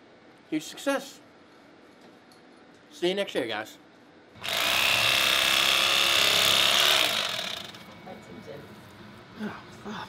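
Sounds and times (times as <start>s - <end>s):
electric carving knife buzzing: 4.4s - 7.9s.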